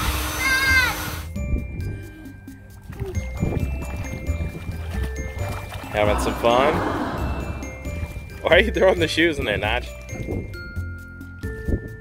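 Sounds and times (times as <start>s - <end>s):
electric air inflator running: 0.0s - 1.3s
tinkling background music: 1.2s - 12.0s.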